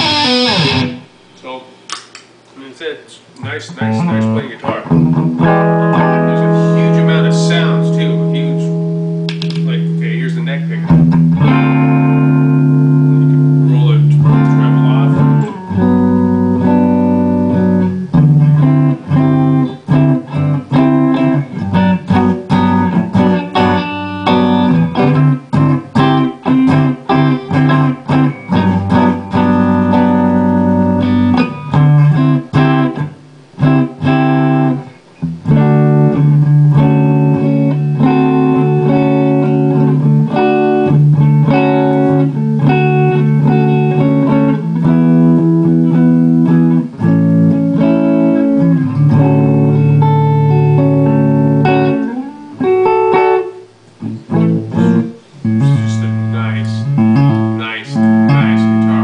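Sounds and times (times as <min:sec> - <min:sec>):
electric guitar through amplifier: 0:00.0 - 0:02.0, 0:03.4 - 0:59.0.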